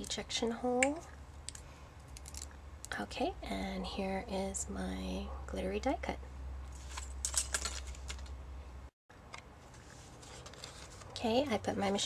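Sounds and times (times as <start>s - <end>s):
low steady hum: 0.0s - 12.0s
cardstock rustling and clicking: 9.7s - 11.2s.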